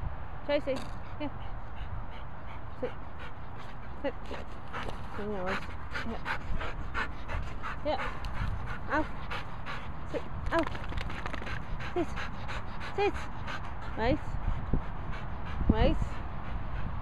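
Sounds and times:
dogs panting rapidly: 0:00.9 - 0:17.0.

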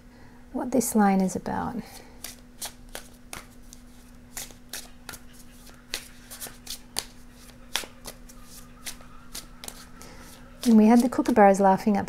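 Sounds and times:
faint low hum: 0:00.0 - 0:12.0
cards being shuffled: 0:02.2 - 0:11.4.

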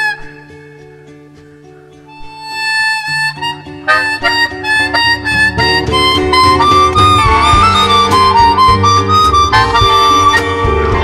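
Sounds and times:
harmonica note bending: 0:00.0 - 0:00.9, 0:02.1 - 0:11.0
acoustic guitar: 0:00.0 - 0:11.0
double bass: 0:03.9 - 0:11.0.

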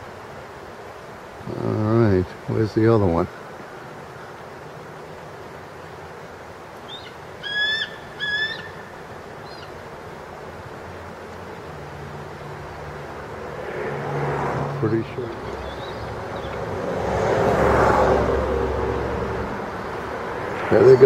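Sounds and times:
steady outdoor hiss: 0:00.0 - 0:21.0
faint bird chirps: 0:06.8 - 0:09.8, 0:15.2 - 0:16.6
bird whistled call: 0:06.9 - 0:08.8.

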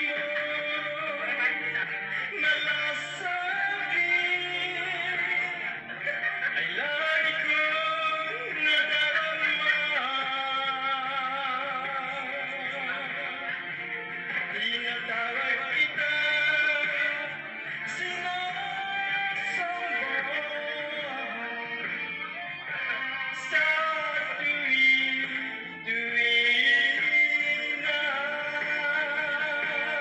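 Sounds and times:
man singing into microphone: 0:00.0 - 0:30.0.

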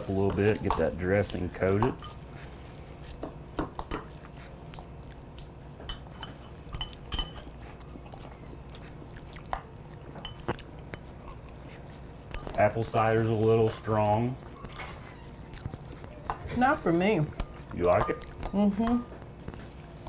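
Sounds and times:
forks clinking on ceramic bowls: 0:00.0 - 0:02.2, 0:03.6 - 0:04.1, 0:05.9 - 0:07.6, 0:10.2 - 0:11.1, 0:12.3 - 0:13.8, 0:16.3 - 0:19.1.

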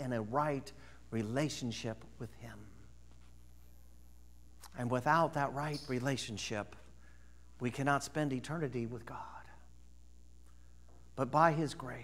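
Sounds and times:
man speaking: 0:00.0 - 0:02.9, 0:04.6 - 0:06.9, 0:07.6 - 0:09.6, 0:11.2 - 0:12.0
low steady hum: 0:00.0 - 0:12.0.

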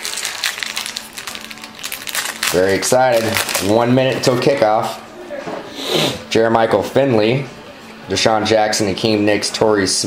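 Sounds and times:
wrapper crinkling as torn open: 0:00.0 - 0:04.4
faint music: 0:00.0 - 0:10.0.

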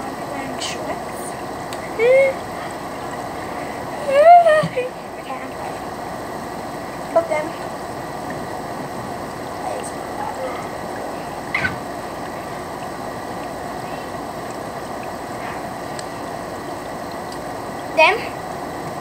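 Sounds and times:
air conditioner running: 0:00.0 - 0:19.0.

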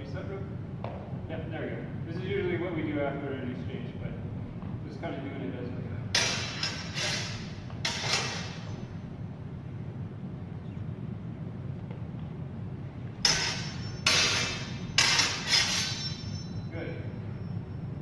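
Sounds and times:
swords clashing: 0:06.2 - 0:08.7, 0:13.2 - 0:16.5.

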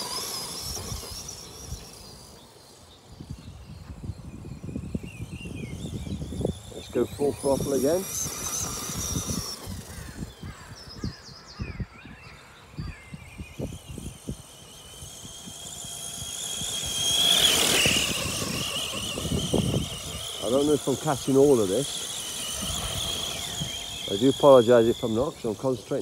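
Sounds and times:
electric motor whining: 0:00.0 - 0:26.0.

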